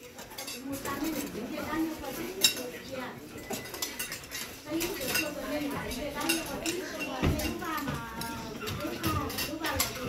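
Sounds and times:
people talking: 0:00.0 - 0:03.7, 0:04.6 - 0:10.0
cutlery clinking against plates: 0:00.0 - 0:10.0.

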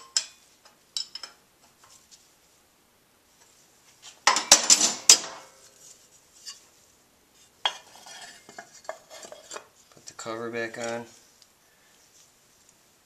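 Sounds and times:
metal parts clattering: 0:04.3 - 0:05.3.

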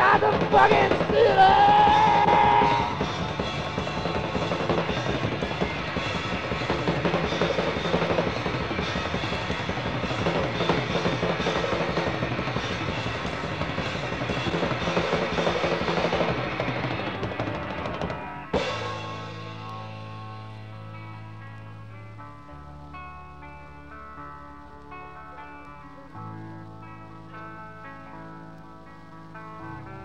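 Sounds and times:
rolling rock drums: 0:00.0 - 0:30.0
sustained guitar and bass: 0:00.0 - 0:30.0.

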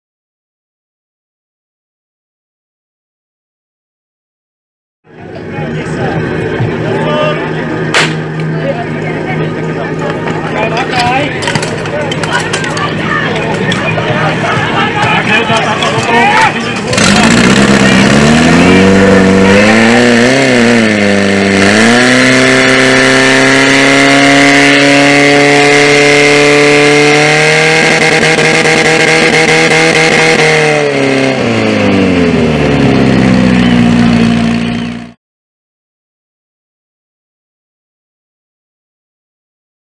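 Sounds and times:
pump engine revving: 0:15.2 - 0:35.2.

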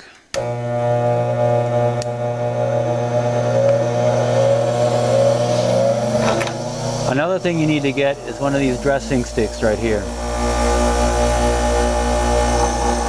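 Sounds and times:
bench grinder humming: 0:00.3 - 0:13.0.

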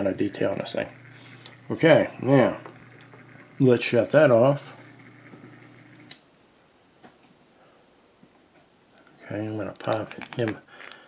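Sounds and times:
low electric hum: 0:00.0 - 0:11.0
small clicks: 0:02.7 - 0:03.6, 0:05.3 - 0:06.3, 0:09.7 - 0:11.0.

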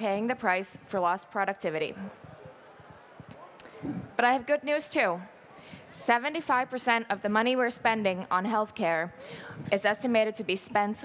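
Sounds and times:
woman talking: 0:00.0 - 0:02.2, 0:04.1 - 0:05.3, 0:05.9 - 0:11.0.

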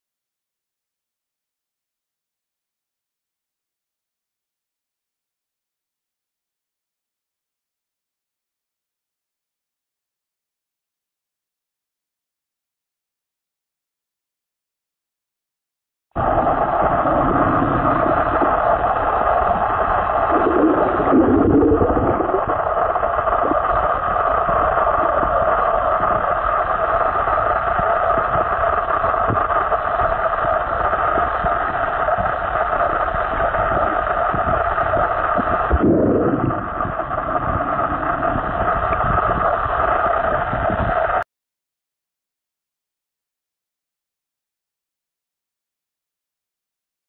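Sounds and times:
muffled underwater noise: 0:16.2 - 0:41.2
low swish: 0:35.7 - 0:39.4.

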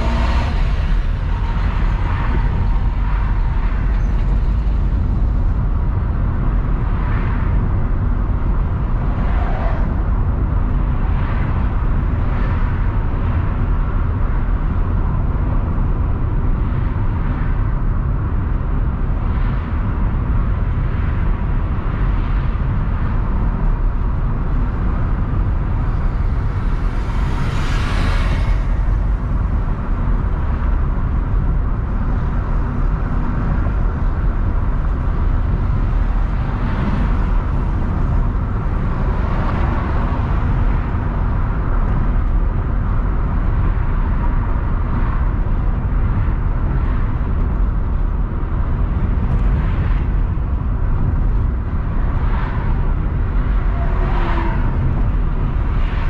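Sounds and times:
car road noise inside cabin: 0:00.0 - 0:56.0.

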